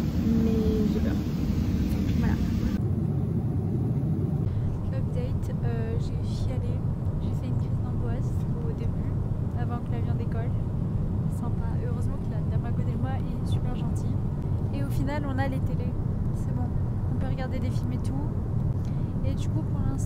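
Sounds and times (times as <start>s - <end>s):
airliner cabin rumble: 0.0s - 20.0s.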